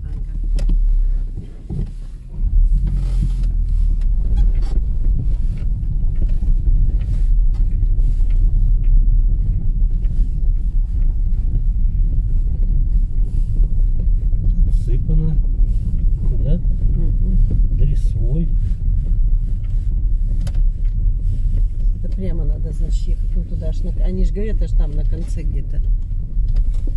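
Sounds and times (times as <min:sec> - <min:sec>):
car engine and road rumble: 0:00.0 - 0:26.9.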